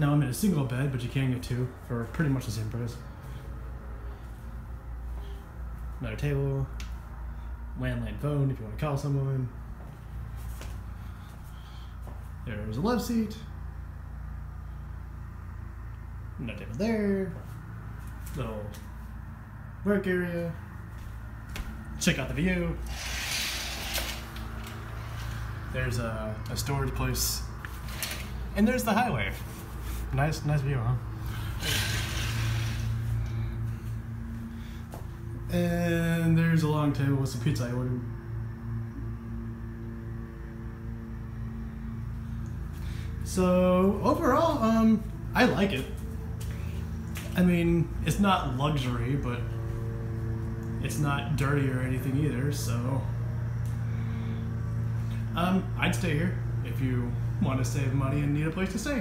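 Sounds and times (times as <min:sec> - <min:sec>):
steady low hum: 0:00.0 - 0:59.0.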